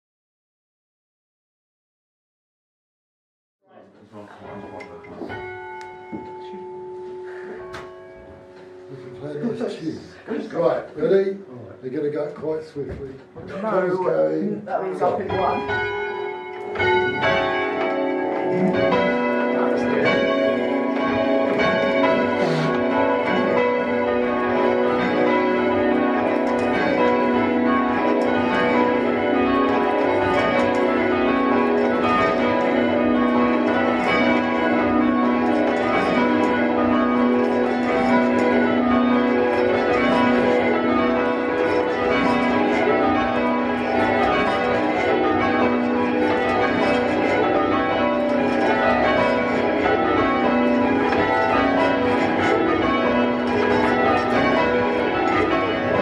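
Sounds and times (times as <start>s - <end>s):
church bells change ringing: 4.5s - 11.2s, 13.8s - 56.0s.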